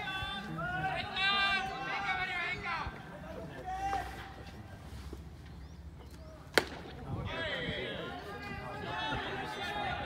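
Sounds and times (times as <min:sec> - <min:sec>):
voices: 0:00.0 - 0:10.0
baseball popping into leather mitt: 0:06.5 - 0:06.9.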